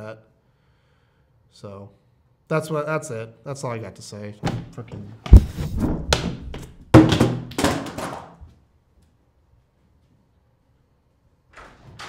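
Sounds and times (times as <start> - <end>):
knocks and footsteps: 4.5 - 8.6
loud thud: 5.3 - 8.1.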